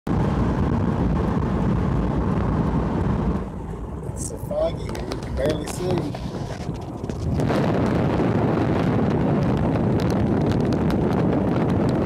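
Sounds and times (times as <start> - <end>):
car interior road and engine noise: 0.1 - 12.0.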